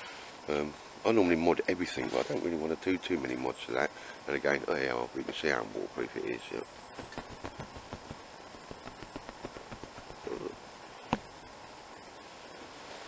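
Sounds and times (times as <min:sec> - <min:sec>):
faint steady hiss: 0:00.0 - 0:13.0
handling clicks and rustles: 0:07.0 - 0:10.5.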